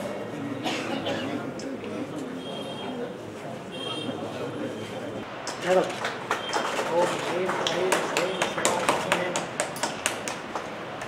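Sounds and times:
voices: 0:00.0 - 0:09.6
group hand claps: 0:05.4 - 0:11.0.

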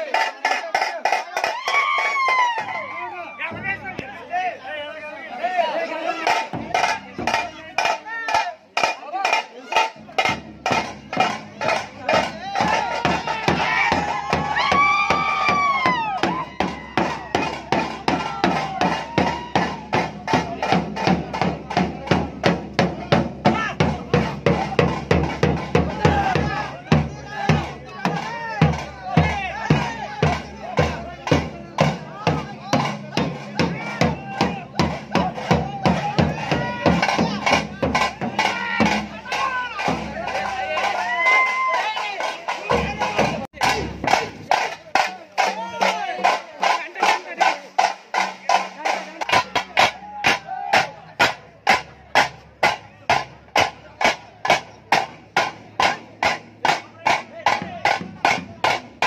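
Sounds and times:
drums beaten fast: 0:00.0 - 0:04.4, 0:06.0 - 0:59.0
crowd shouting: 0:00.0 - 0:59.0.

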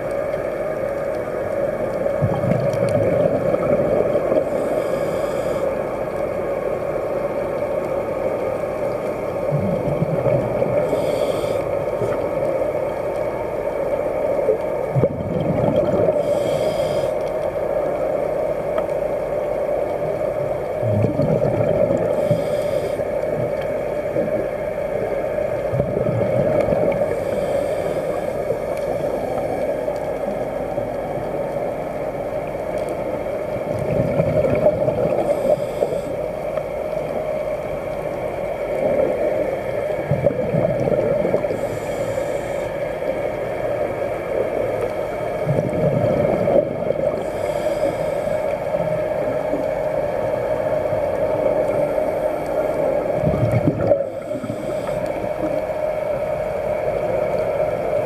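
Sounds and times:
steady underwater hum: 0:00.0 - 0:58.0
regulator exhaling bubbles: 0:20.8 - 0:22.6
gurgling breath sounds: 0:20.8 - 0:23.2.

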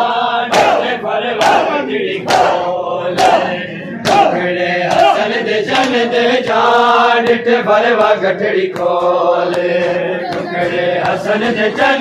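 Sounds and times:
men chanting a lament: 0:00.0 - 0:12.0
hands slapping bare chests: 0:00.5 - 0:12.0.

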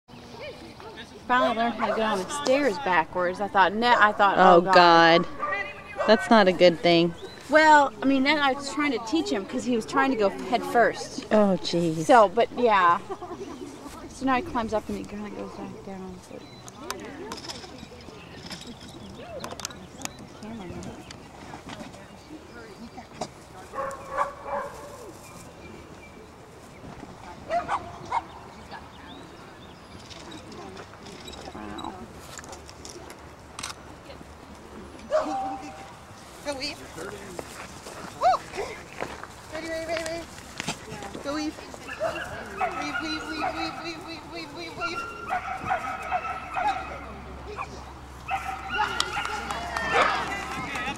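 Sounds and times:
faint voices: 0:00.1 - 0:50.9
dog barking: 0:23.8 - 0:25.0, 0:27.5 - 0:28.3, 0:35.1 - 0:35.7, 0:41.9 - 0:43.7, 0:45.0 - 0:47.1, 0:48.3 - 0:49.5
dog barking in excited yaps: 0:44.9 - 0:47.0, 0:48.3 - 0:50.2.

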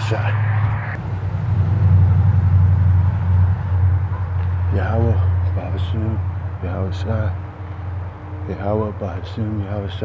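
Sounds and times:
steady low rumble: 0:00.0 - 0:05.8.

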